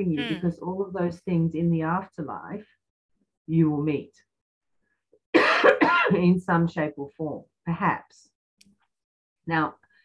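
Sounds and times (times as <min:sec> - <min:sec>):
woman coughing: 0:05.3 - 0:06.2.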